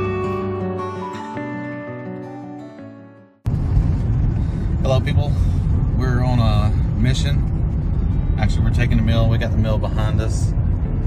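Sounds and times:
road and engine drone: 0.0s - 2.6s, 3.4s - 11.0s.

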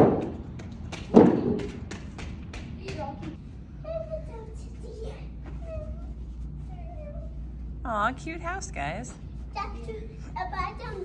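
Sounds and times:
room ventilation hum: 0.0s - 11.0s
child's high voice: 3.8s - 7.4s, 9.6s - 11.0s.

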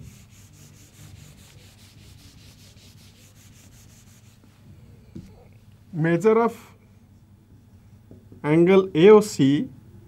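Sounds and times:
duster rubbing on whiteboard: 0.0s - 4.6s.

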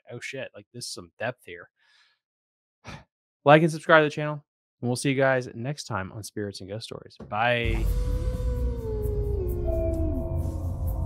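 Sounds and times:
deep droning rumble: 7.7s - 11.0s
slow downward gliding tones: 7.7s - 11.0s.

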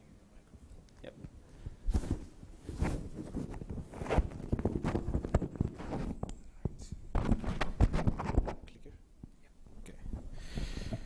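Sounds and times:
microphone handling noise: 1.2s - 9.4s.

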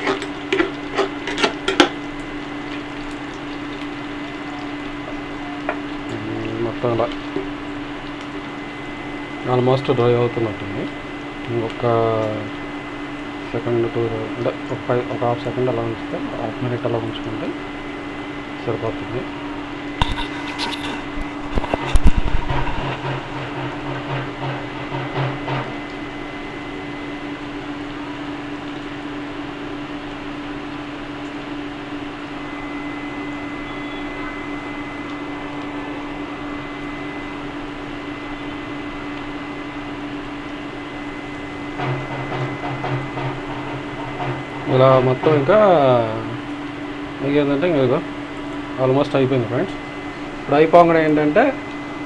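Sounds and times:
mechanical hum: 0.0s - 52.0s
onions sizzling in oil: 0.0s - 52.0s.

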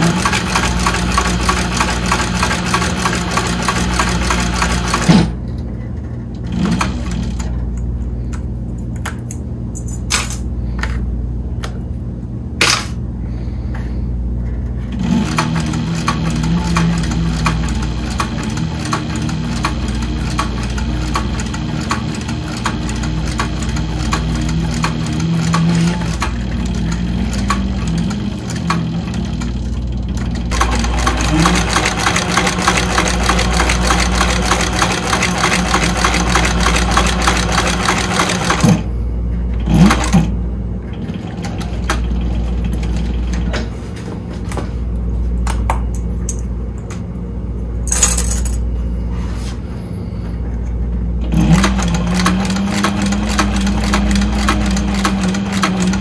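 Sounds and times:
sewing machine stitching: 0.0s - 5.4s, 6.4s - 7.6s, 14.9s - 38.8s, 39.6s - 43.5s, 51.2s - 56.0s.

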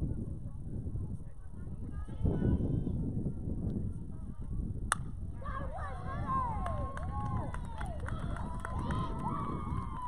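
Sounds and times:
bat hitting ball crack: 4.9s - 5.2s.

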